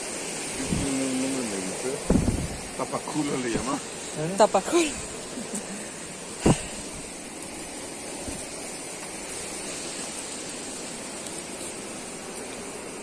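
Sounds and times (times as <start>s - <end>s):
even hiss: 0.0s - 13.0s.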